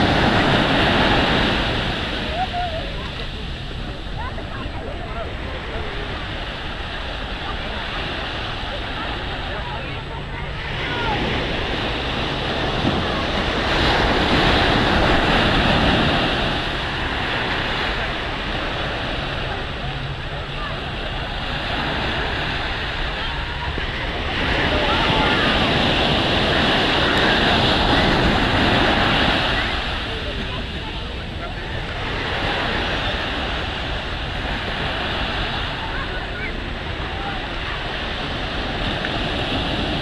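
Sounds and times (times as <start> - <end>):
small waves breaking on shore: 0.0 - 40.0
wind buffeting microphone: 0.0 - 40.0.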